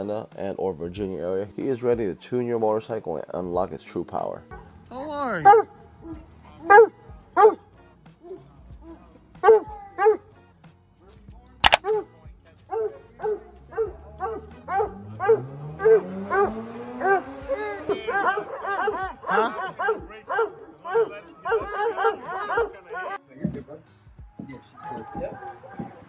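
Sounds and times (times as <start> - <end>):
dogs barking: 4.5 - 4.8, 5.4 - 10.3, 11.8 - 23.2
sharp click: 11.6 - 11.9.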